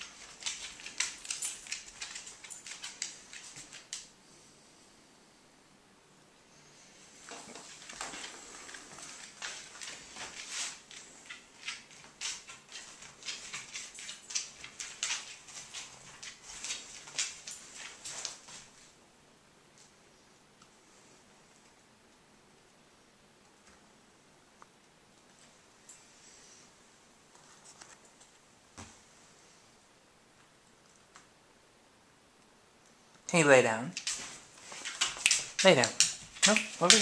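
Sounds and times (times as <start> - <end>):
dog claws clicking on hardwood: 0.0 - 4.1, 7.5 - 18.4, 34.0 - 37.0.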